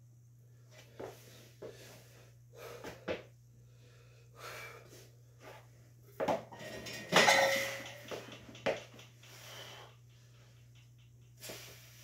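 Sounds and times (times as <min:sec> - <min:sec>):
barbell plates clanking on rack: 0:06.5 - 0:08.7.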